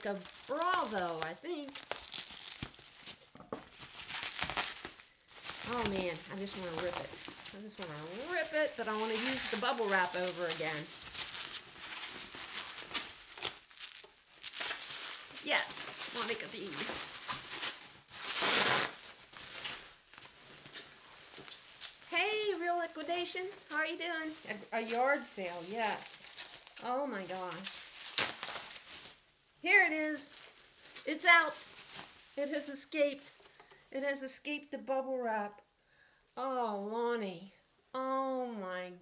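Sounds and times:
bubble wrap crinkling: 0.0s - 33.7s.

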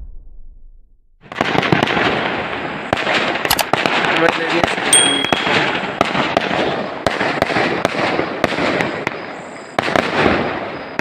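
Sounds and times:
fireworks crackling and popping: 1.2s - 11.0s.

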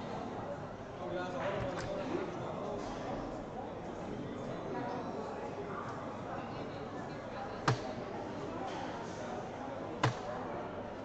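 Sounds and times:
murmur of voices: 0.0s - 11.0s
dart hitting dartboard: 7.7s - 7.9s, 10.0s - 10.3s.

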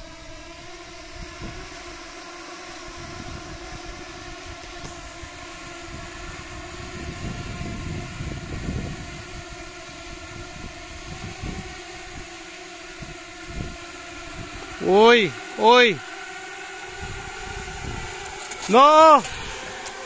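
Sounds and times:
drone swarm humming: 0.0s - 20.0s.

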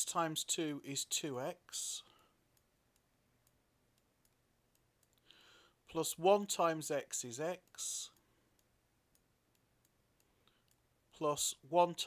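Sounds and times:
computer mouse clicks: 2.5s - 5.3s, 7.6s - 10.8s
short breath: 5.2s - 5.8s.

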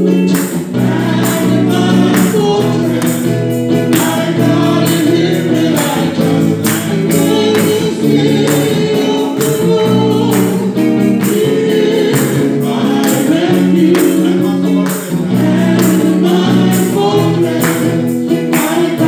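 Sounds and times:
electric guitar: 0.0s - 19.0s
steady percussion beat: 0.0s - 19.0s.

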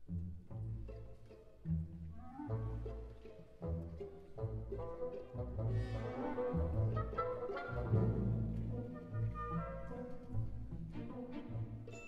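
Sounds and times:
orchestra with trombones: 4.4s - 11.8s.

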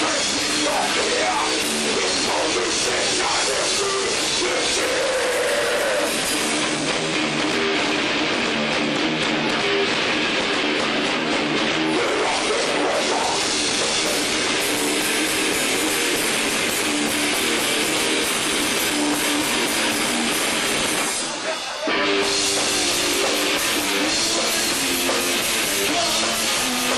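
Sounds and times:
drum kit: 0.0s - 26.9s
electric guitars: 0.0s - 26.9s.

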